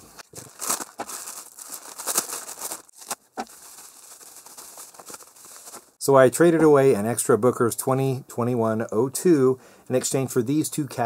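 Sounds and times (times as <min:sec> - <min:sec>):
plastic wrapping crinkling and tearing: 0:00.0 - 0:06.0.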